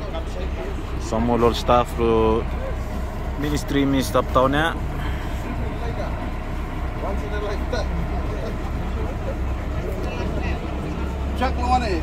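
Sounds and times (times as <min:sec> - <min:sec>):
boat engine droning: 0:00.0 - 0:12.0
faint voices talking: 0:00.0 - 0:12.0
water rushing along hull: 0:00.0 - 0:12.0.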